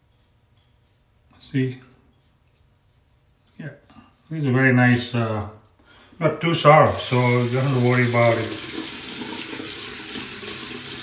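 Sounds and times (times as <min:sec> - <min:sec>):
water tap running into sink: 0:06.8 - 0:11.0.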